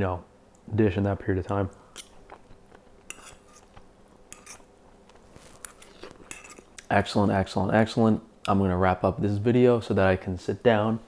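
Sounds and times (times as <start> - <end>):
faint chewing: 1.7 - 6.9.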